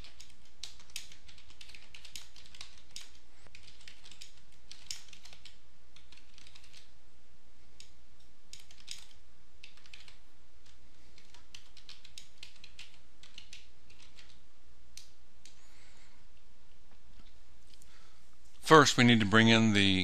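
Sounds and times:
computer keyboard typing: 0.0s - 6.9s, 7.8s - 14.4s
steady low hum: 0.0s - 20.0s.

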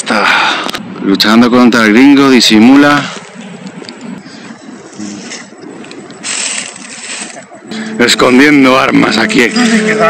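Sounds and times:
dry leaves rustling underfoot: 6.2s - 7.6s.

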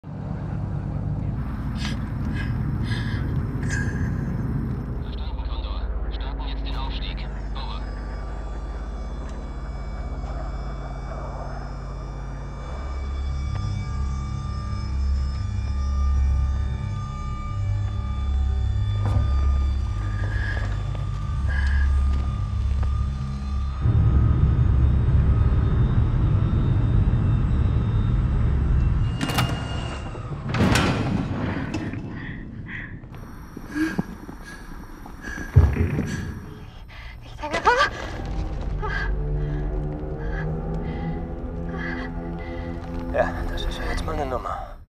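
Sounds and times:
deep pulsing rumble: 0.0s - 44.8s
droning tones: 0.0s - 44.9s.

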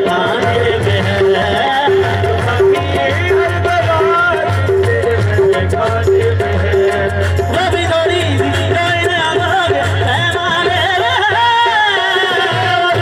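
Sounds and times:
harmonium notes: 0.0s - 13.0s
tabla beat: 0.0s - 13.0s.

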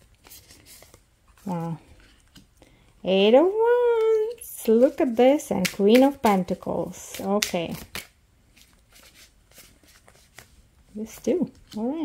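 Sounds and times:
cards being shuffled: 0.0s - 2.5s, 3.9s - 12.0s.

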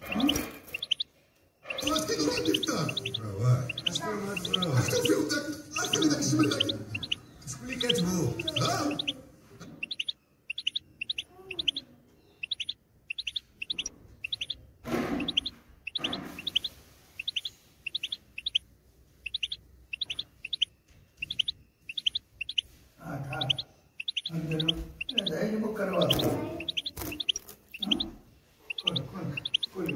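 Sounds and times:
goldfinch singing: 0.0s - 18.6s, 19.2s - 29.9s
person's voice: 1.8s - 9.2s.

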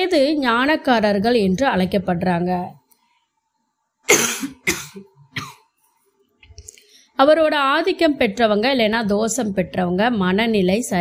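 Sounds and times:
person coughing: 4.1s - 5.7s.

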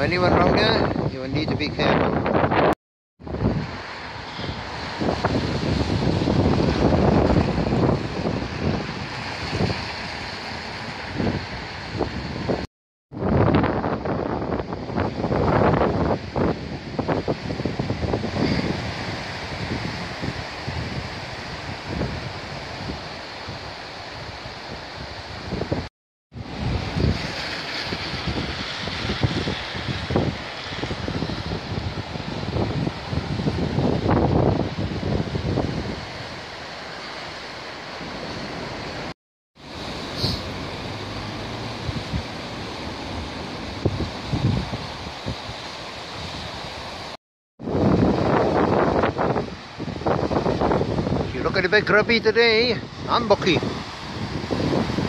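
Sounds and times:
wind gusting on microphone: 0.0s - 55.0s
river water rushing: 3.3s - 12.6s, 14.0s - 55.0s.

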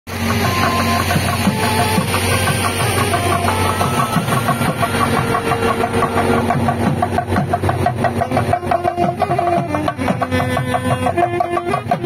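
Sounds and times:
barrel drum beating: 0.1s - 12.0s
low drone: 0.1s - 12.0s
saxophone melody: 0.1s - 12.0s.

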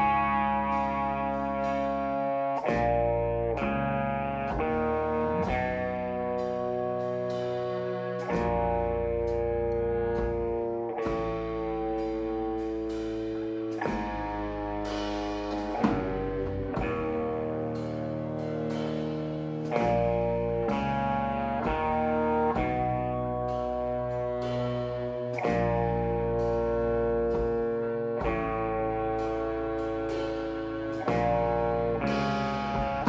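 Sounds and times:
electric guitar chords ringing: 0.0s - 33.0s
drum and cymbal hits: 4.5s - 33.0s.

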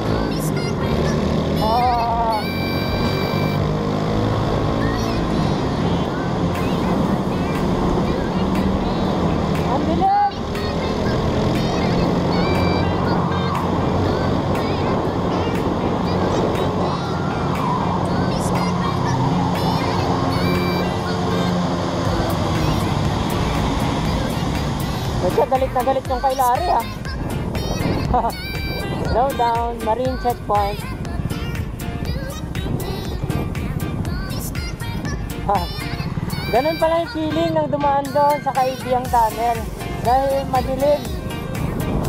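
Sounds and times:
wind and road noise: 0.0s - 42.0s.

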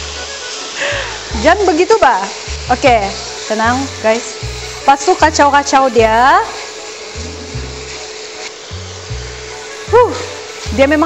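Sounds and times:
meat sizzling in a wok: 0.0s - 11.0s
background music with bass line: 8.7s - 11.0s.

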